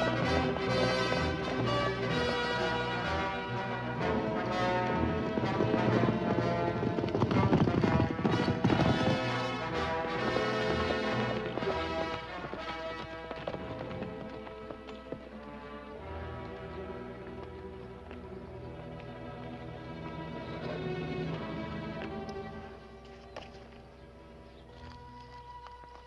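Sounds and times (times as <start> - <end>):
horses galloping: 0.0 - 26.0
orchestral film score: 0.0 - 26.0.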